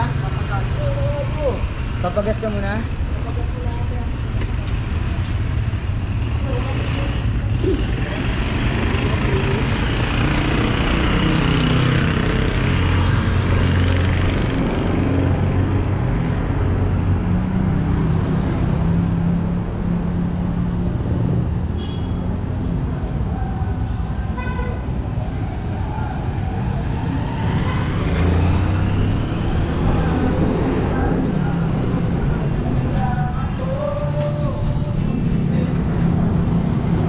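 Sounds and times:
motorcycle engines running: 0:00.0 - 0:22.5, 0:23.1 - 0:37.0
vehicle passing: 0:04.8 - 0:20.3, 0:25.0 - 0:37.0
voices: 0:28.9 - 0:36.3.

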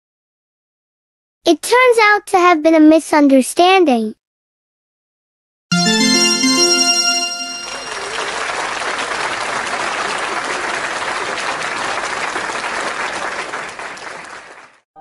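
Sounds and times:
short musical chime: 0:05.7 - 0:08.5
crowd applause: 0:05.7 - 0:14.8.

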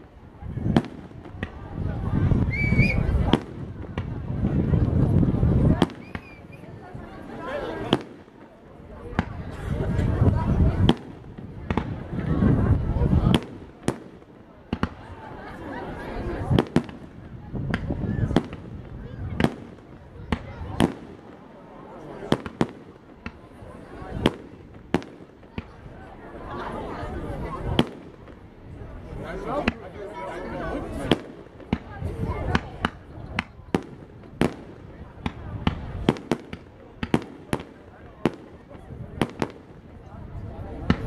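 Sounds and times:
distant fireworks bangs: 0:10.7 - 0:15.1, 0:16.5 - 0:21.6, 0:22.2 - 0:25.8, 0:31.0 - 0:39.9.

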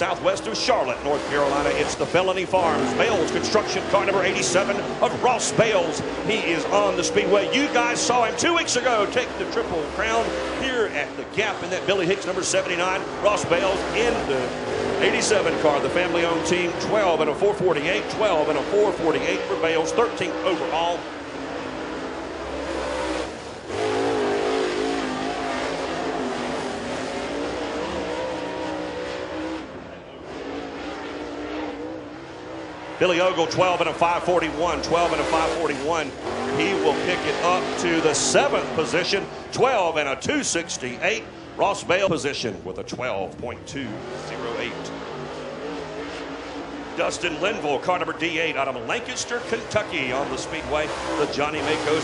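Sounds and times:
race car engine running hard: 0:00.0 - 0:52.0.

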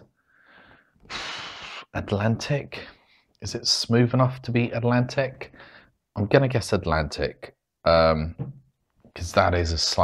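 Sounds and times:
loud breath through the nose: 0:00.3 - 0:01.9.

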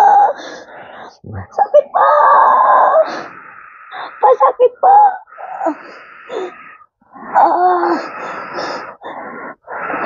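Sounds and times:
woman moaning and wheezing: 0:00.0 - 0:10.0.

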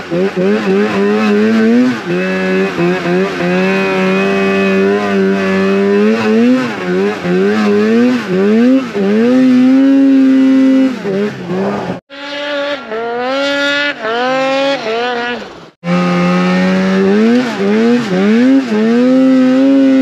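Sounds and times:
snowmobile engine revving: 0:00.0 - 0:20.0.

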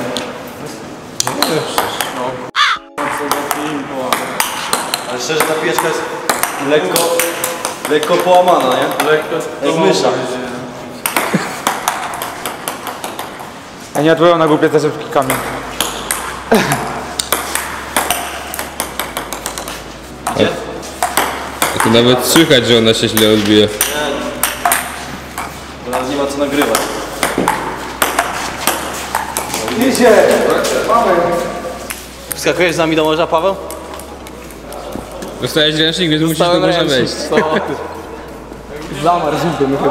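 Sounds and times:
table tennis ball hits: 0:01.2 - 0:02.2, 0:03.0 - 0:09.3, 0:11.0 - 0:13.6, 0:15.2 - 0:30.7, 0:33.6 - 0:34.7
men calling out and talking: 0:19.7 - 0:39.9.

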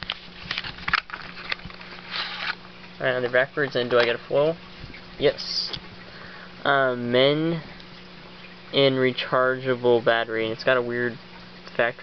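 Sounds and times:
cards rustling: 0:00.0 - 0:02.6.

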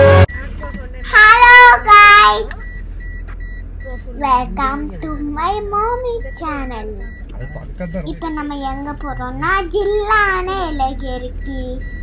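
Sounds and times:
intro music: 0:00.0 - 0:00.3
car cabin hum: 0:00.0 - 0:12.0
faint high beeps: 0:02.6 - 0:04.1, 0:06.1 - 0:08.3.

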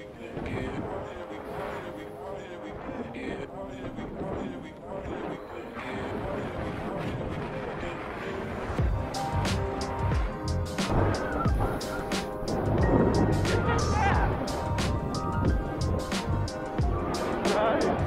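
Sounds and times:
background music: 0:00.0 - 0:18.0
steady drum beat: 0:08.8 - 0:18.0.

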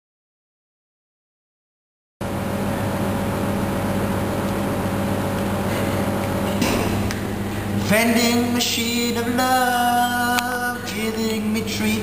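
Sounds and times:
steady low hum: 0:02.2 - 0:12.0
person singing: 0:07.8 - 0:12.0.

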